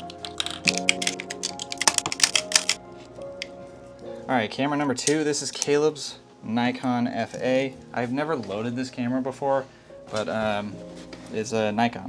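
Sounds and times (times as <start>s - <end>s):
background music with sustained tones: 0.0s - 12.0s.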